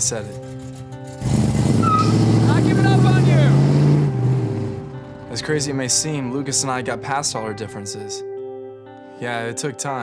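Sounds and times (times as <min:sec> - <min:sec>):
car engine accelerating: 0:01.1 - 0:05.3.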